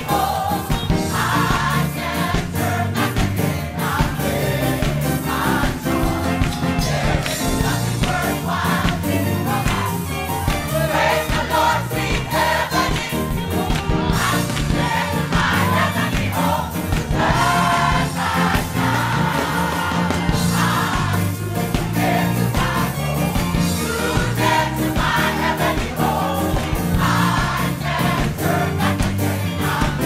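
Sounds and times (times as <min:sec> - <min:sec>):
gospel choir singing: 0:00.0 - 0:30.0
steady beat: 0:00.0 - 0:30.0.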